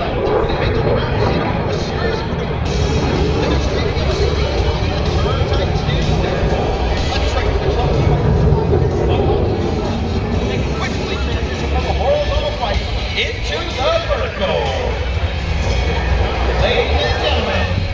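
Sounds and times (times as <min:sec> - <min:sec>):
indistinct voices: 0:00.0 - 0:17.9
low rumble: 0:00.0 - 0:17.9
music: 0:00.0 - 0:17.9.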